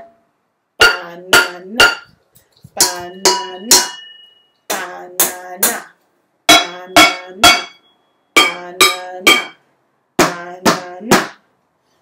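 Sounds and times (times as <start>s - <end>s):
wooden spoons striking pots: 0.8s - 5.9s, 6.5s - 9.6s.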